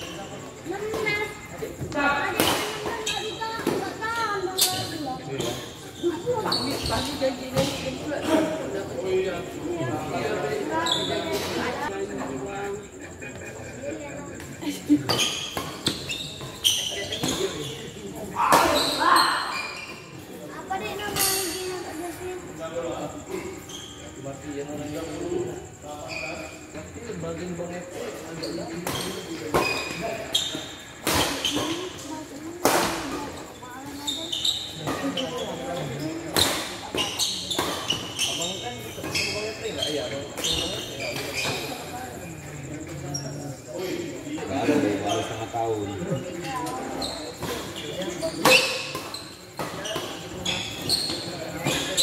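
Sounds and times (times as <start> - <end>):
shoes squeaking on court: 0.0 - 22.4, 23.2 - 25.2, 26.0 - 27.0, 27.6 - 52.0.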